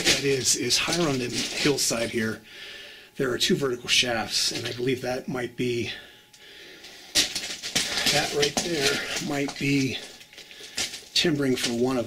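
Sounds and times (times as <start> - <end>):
footsteps crunching on rubble: 0.0 - 2.3, 6.8 - 12.0
stones clinking: 7.2 - 12.0.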